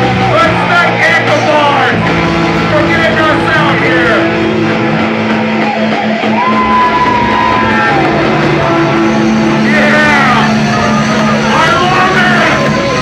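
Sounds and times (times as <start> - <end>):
vocals over music: 0.0 - 6.1, 7.6 - 13.0
distorted electric guitars: 0.0 - 13.0
heavy metal band playing live: 0.0 - 13.0.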